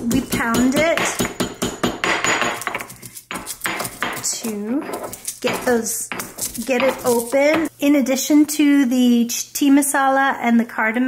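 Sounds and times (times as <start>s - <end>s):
pestle pounding in stone mortar: 0.0s - 7.7s.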